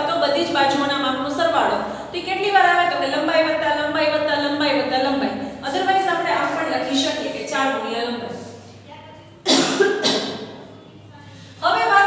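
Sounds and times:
woman speaking: 0:00.0 - 0:09.4, 0:11.3 - 0:12.0
woman coughing into her hand: 0:09.4 - 0:10.6.

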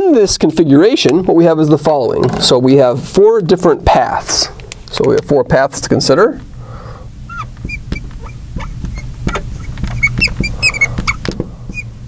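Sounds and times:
steady low hum: 0:00.0 - 0:12.0
marker squeaking on glass: 0:07.2 - 0:12.0.

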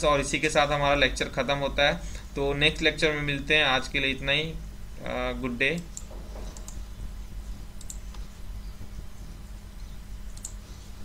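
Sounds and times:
steady low hum: 0:00.0 - 0:11.0
computer mouse clicks: 0:05.8 - 0:06.8, 0:07.8 - 0:08.3, 0:10.3 - 0:10.8.

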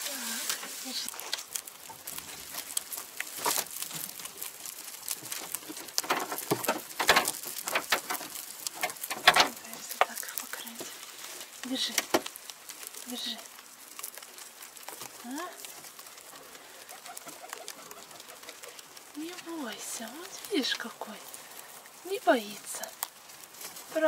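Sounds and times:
dry hay rustling and crackling: 0:00.0 - 0:24.0.

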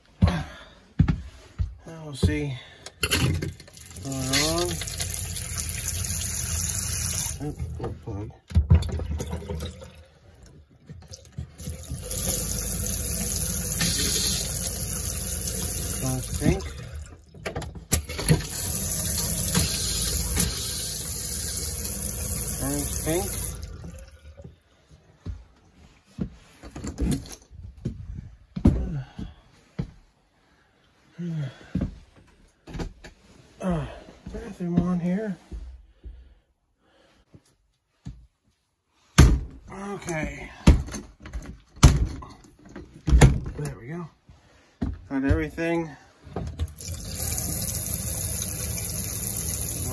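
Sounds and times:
faucet running: 0:03.6 - 0:07.5, 0:11.0 - 0:17.3, 0:18.0 - 0:24.4, 0:46.7 - 0:49.9
water pump humming: 0:03.6 - 0:07.6, 0:11.1 - 0:17.2, 0:18.0 - 0:24.5, 0:46.7 - 0:49.9.

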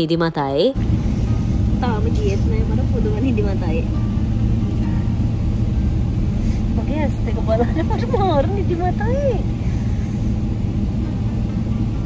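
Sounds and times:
airliner cabin engine rumble: 0:00.0 - 0:12.0.

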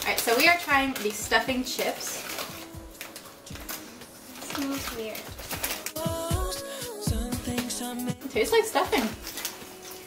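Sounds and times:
chip bag crinkling: 0:00.0 - 0:07.1, 0:08.4 - 0:10.0
chips crackling: 0:00.0 - 0:10.0
soft background music: 0:00.0 - 0:10.0.

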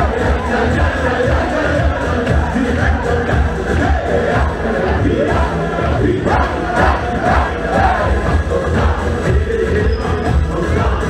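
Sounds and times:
dance band music: 0:00.0 - 0:11.0
men singing loudly together: 0:00.0 - 0:11.0
pulsing bass beat: 0:00.0 - 0:11.0.

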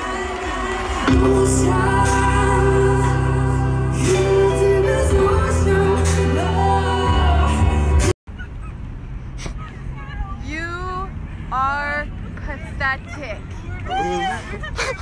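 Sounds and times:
live concert music with heavy bass: 0:00.0 - 0:08.1
young people whooping and squealing: 0:13.3 - 0:15.0.

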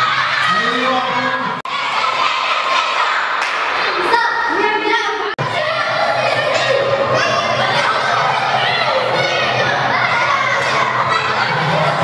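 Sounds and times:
children shouting and cheering: 0:00.0 - 0:12.0.

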